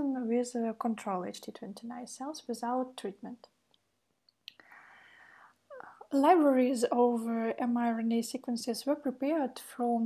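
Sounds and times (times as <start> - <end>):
mouth click: 4.3 - 4.7
woman's faint breath: 4.6 - 5.6.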